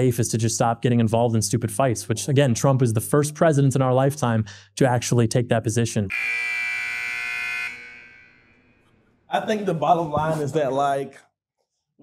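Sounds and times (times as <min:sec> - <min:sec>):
electronic buzzer tone: 0:06.1 - 0:08.8.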